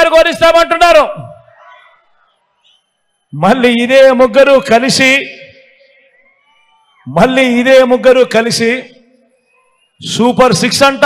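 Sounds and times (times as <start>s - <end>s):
man speaking over public address: 0.0s - 1.6s, 3.3s - 6.1s, 7.0s - 9.1s, 10.0s - 11.0s.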